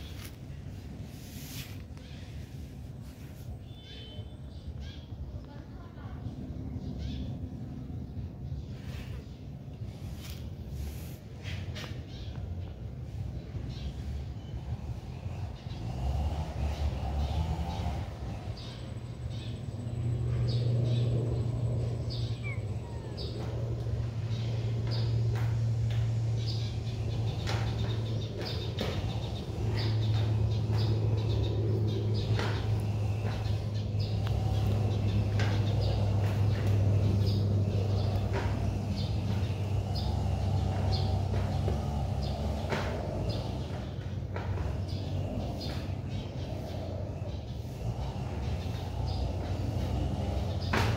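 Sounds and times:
small birds chirping: 0:00.0 - 0:50.9.

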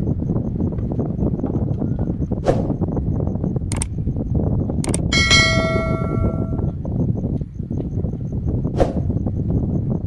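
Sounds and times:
low rumble: 0:04.8 - 0:06.9
notification bell ding: 0:05.2 - 0:06.7.

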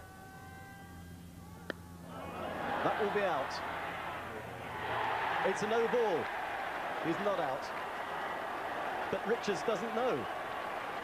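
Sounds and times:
crowd noise: 0:01.4 - 0:11.0.

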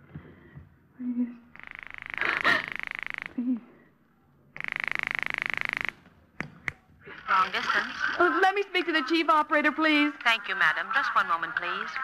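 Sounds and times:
telephone ringing: 0:04.6 - 0:06.0.

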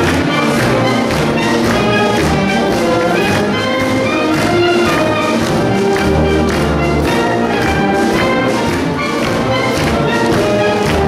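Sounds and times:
band playing live: 0:00.0 - 0:11.0.

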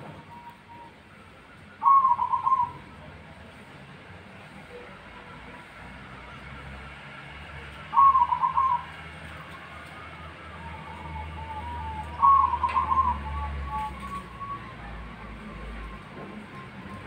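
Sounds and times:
dove cooing: 0:01.8 - 0:03.0, 0:07.8 - 0:09.1, 0:10.6 - 0:16.0.

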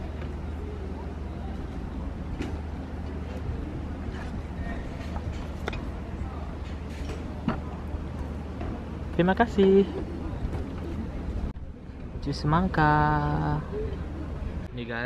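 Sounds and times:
faint voices: 0:00.0 - 0:12.2, 0:12.8 - 0:15.0.

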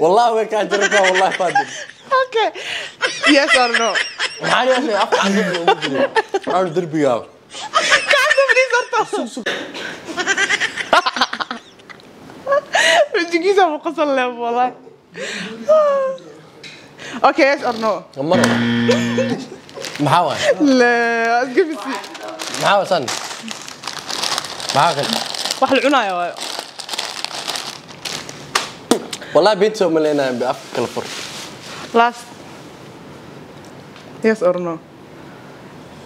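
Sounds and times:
woman laughing: 0:00.7 - 0:06.8, 0:07.6 - 0:09.4, 0:10.1 - 0:13.3, 0:18.9 - 0:19.8
packaging wrapper crinkling: 0:19.6 - 0:20.4, 0:21.6 - 0:28.8.

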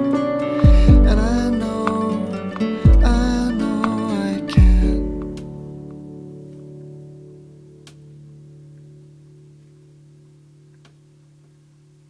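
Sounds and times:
classical guitar chord ringing: 0:00.0 - 0:11.6.

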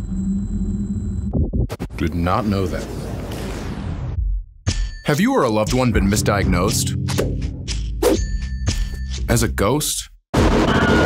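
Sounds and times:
metallic ding: 0:04.7 - 0:05.9.

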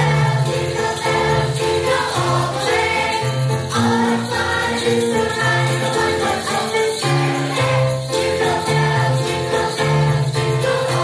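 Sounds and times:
mixed choir singing: 0:00.0 - 0:11.0
piano bass notes: 0:00.0 - 0:11.0.

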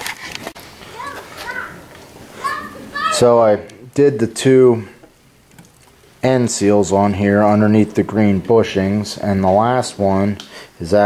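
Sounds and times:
child calling out: 0:00.9 - 0:03.5.

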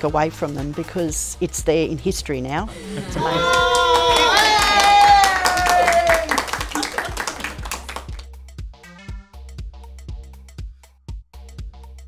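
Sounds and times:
background music with beat: 0:00.0 - 0:12.0
person cheering: 0:02.8 - 0:08.1
group clapping: 0:02.8 - 0:08.3.

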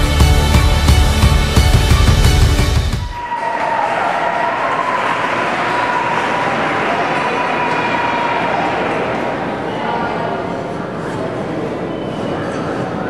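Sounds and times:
background music: 0:00.0 - 0:04.0.

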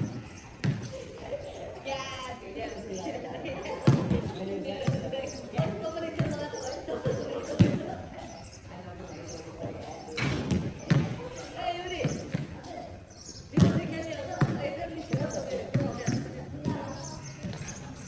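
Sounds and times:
basketball bouncing on tiled court: 0:00.0 - 0:01.0, 0:03.8 - 0:08.0, 0:09.6 - 0:12.9, 0:13.6 - 0:17.8.

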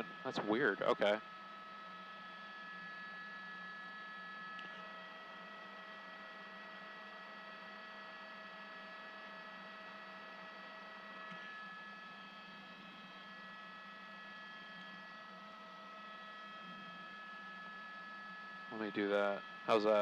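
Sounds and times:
steady whining tones: 0:00.0 - 0:20.0
helicopter cabin hum and hiss: 0:18.8 - 0:20.0.

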